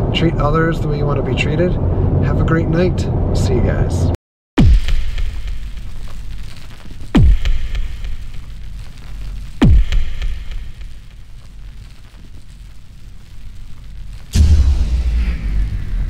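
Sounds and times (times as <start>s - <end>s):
cinematic boom hits: 4.6s - 8.4s, 9.6s - 11.1s, 14.1s - 16.0s
downward sweep into deep rumble: 14.1s - 16.0s.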